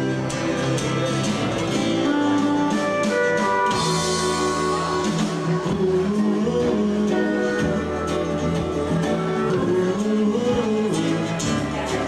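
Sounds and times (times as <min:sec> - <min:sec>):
live country-rock band: 0:00.0 - 0:12.0
strummed acoustic guitar: 0:00.0 - 0:12.0.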